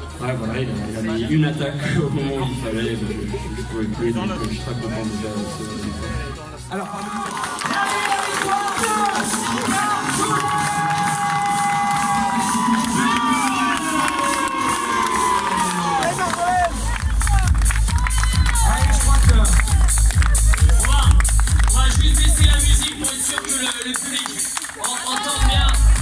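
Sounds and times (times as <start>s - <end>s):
music over loudspeakers: 0.0s - 26.0s
crowd cheering and clapping: 6.7s - 26.0s
heavy bass beat: 15.9s - 23.3s, 25.4s - 26.0s.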